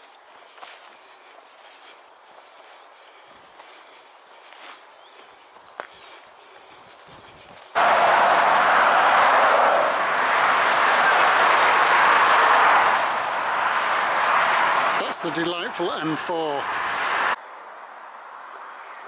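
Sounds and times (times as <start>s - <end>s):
motorway traffic rushing: 0.0s - 19.0s.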